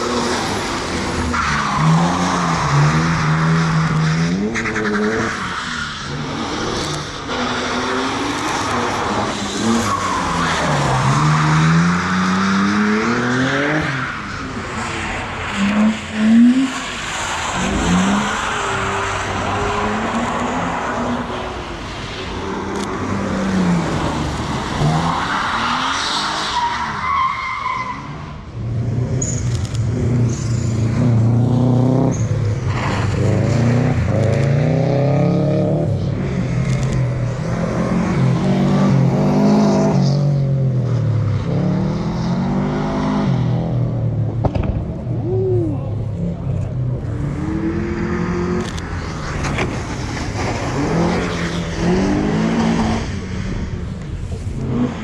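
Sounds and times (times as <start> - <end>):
tyres skidding on wet asphalt: 0.0 - 44.8, 46.2 - 55.0.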